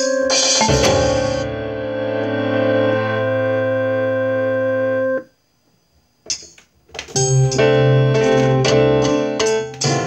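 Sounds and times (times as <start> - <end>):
sustained electronic keyboard chord: 0.0 - 5.4, 7.2 - 10.0.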